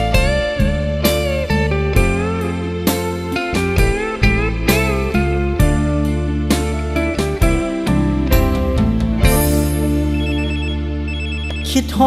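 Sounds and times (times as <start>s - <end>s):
telephone ring effect: 10.1s - 11.9s.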